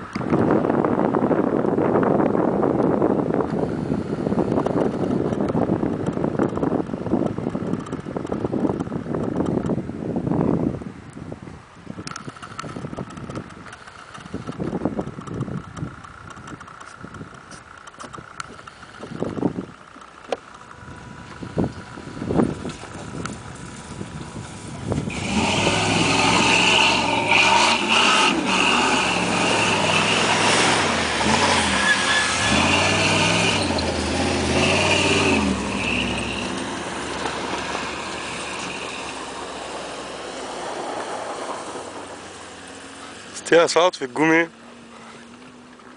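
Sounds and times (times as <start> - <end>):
wind buffeting microphone: 0.0 - 19.9, 20.7 - 43.8
faint distant vehicles: 9.9 - 45.9
wheels spinning through dry grass: 12.0 - 45.9
pickup truck engine revving: 20.8 - 45.8.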